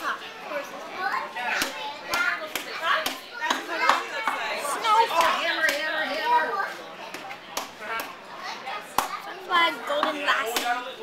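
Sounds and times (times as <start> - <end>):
children chattering and calling out: 0.0 - 11.0.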